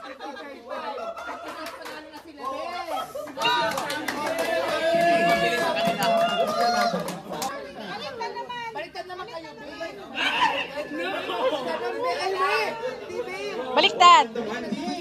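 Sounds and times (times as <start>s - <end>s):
people talking and calling out: 0.0s - 15.0s.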